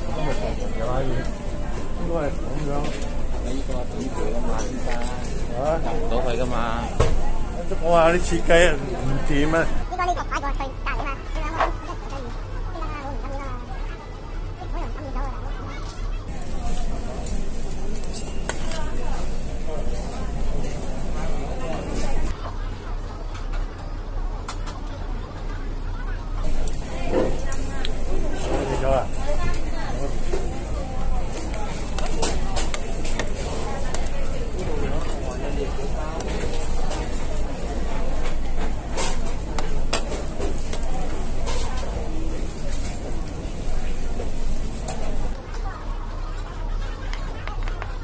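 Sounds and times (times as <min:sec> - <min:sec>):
restaurant chatter: 0:00.0 - 0:48.0.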